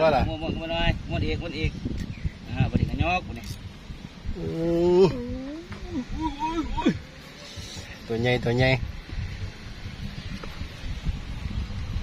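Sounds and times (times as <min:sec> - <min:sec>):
man exclaiming oh: 0:04.4 - 0:07.1.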